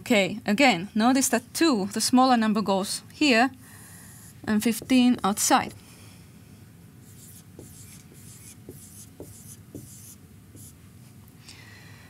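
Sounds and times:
marker writing on whiteboard: 4.1 - 5.8, 7.0 - 10.8.

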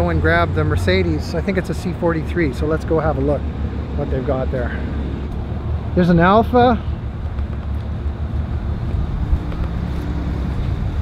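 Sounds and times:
wind buffeting microphone: 4.9 - 11.0.

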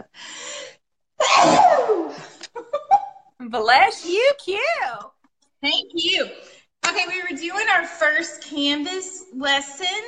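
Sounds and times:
woman sneezing: 1.2 - 2.0.

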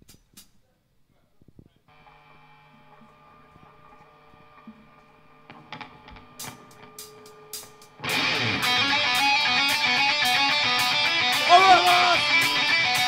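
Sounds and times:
electric guitar chord: 1.9 - 13.0.

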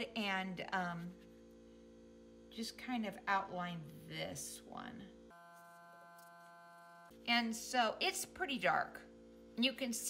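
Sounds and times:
faint electrical buzz: 0.0 - 10.0.

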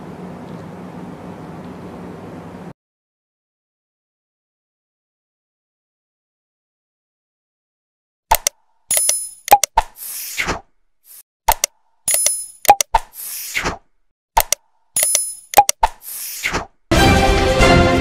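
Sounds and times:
sharp mouse clicks: 8.3 - 10.2, 11.5 - 13.7, 14.4 - 16.6.

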